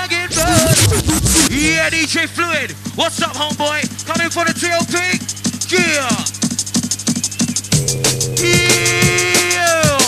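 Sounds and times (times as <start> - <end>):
fast drum and bass music: 0.0 - 10.0
deep bass note: 0.3 - 2.1
person rapping rhythmically: 0.3 - 5.1.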